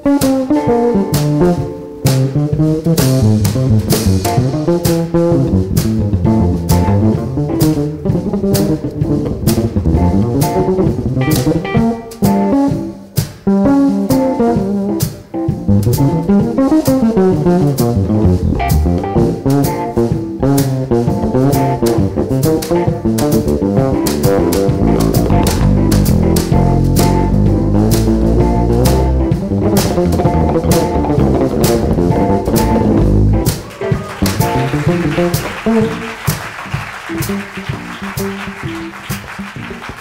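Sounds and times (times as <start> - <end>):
electric bass guitar solo: 0.0 - 12.9, 15.6 - 36.3
drum kit keeping time: 0.0 - 40.0.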